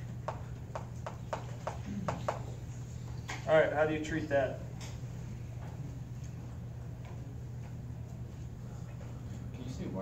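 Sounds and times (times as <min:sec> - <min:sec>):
low room hum: 0:00.0 - 0:10.0
chalk tapping on a blackboard: 0:00.2 - 0:02.6.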